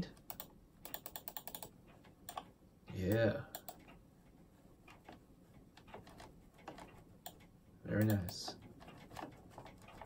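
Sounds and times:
computer mouse clicks: 0:00.1 - 0:02.5, 0:03.1 - 0:04.0, 0:04.9 - 0:10.0.

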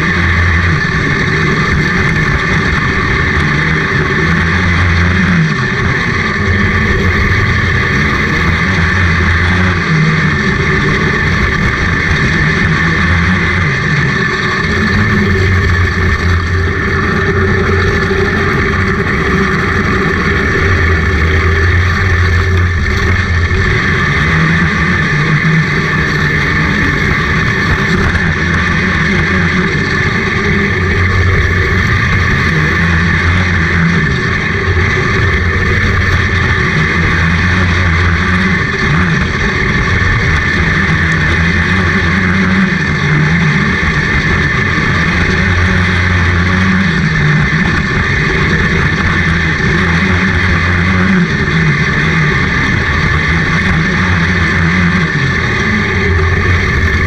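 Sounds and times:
kart engine revving: 0:00.0 - 0:57.0.

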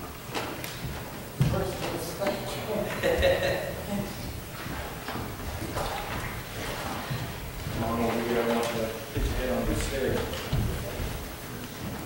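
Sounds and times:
water sloshing: 0:00.0 - 0:12.0.

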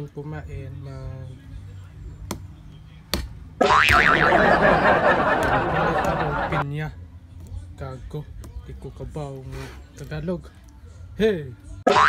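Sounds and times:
cartoon boing: 0:03.6 - 0:04.4.

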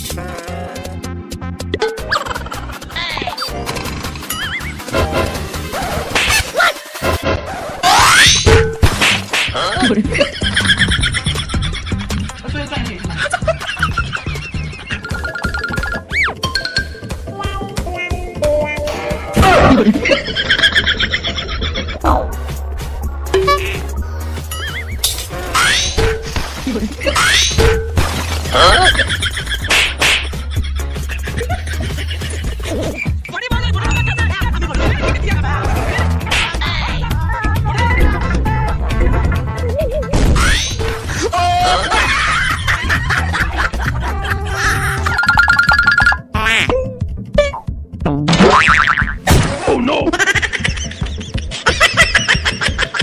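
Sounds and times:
bass-heavy music: 0:00.0 - 0:53.0
fast repeating beat: 0:12.5 - 0:17.0
springy cartoon boing: 0:23.4 - 0:23.8, 0:48.3 - 0:49.2.

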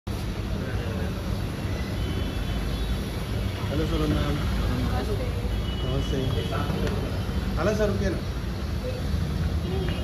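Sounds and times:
vehicle and street noise: 0:00.1 - 0:10.0.

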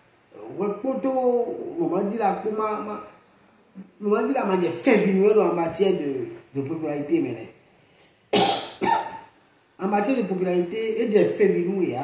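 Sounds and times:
man coughing: 0:08.4 - 0:09.3.

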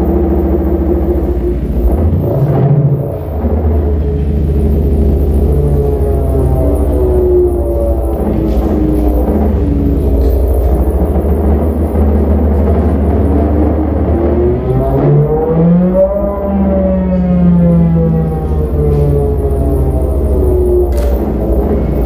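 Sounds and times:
sliding synthesizer tones: 0:00.0 - 0:22.0
synthesizer low drone: 0:00.0 - 0:22.0.

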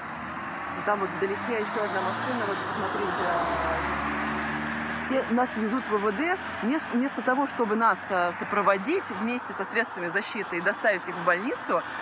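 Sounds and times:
road and tyre noise in car: 0:00.0 - 0:12.0.

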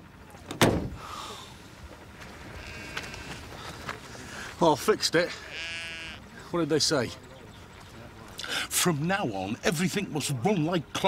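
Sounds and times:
distant sheep bleating: 0:02.4 - 0:03.6, 0:05.2 - 0:06.3.

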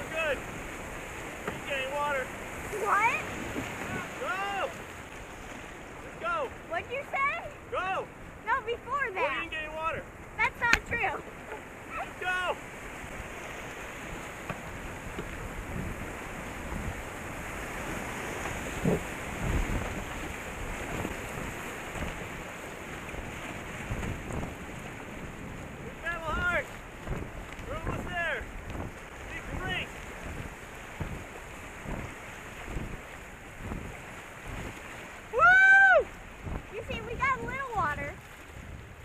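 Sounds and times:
water slapping canoe hull: 0:00.0 - 0:39.0
wind buffeting microphone: 0:00.0 - 0:39.0
low thumps: 0:30.2 - 0:33.0.

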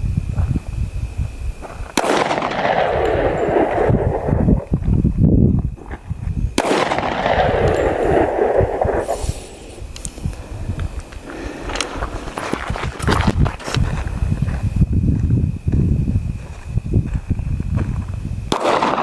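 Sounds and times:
wind rumbling on microphone: 0:00.0 - 0:19.0
handgun shots with echo: 0:02.0 - 0:04.3, 0:06.6 - 0:09.2, 0:18.6 - 0:19.0.

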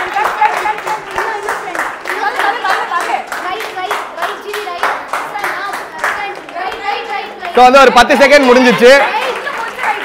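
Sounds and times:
people clapping: 0:00.0 - 0:10.0
voices: 0:00.0 - 0:10.0.

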